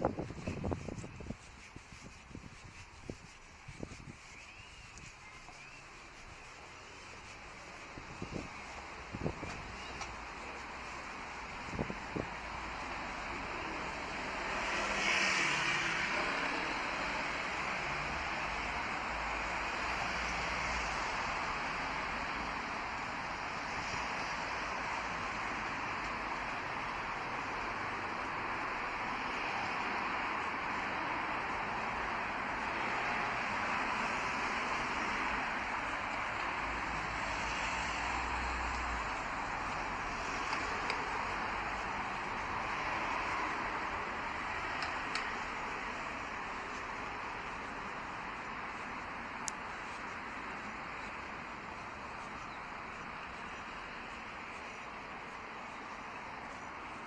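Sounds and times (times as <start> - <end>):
cars passing on road: 0.0 - 57.0.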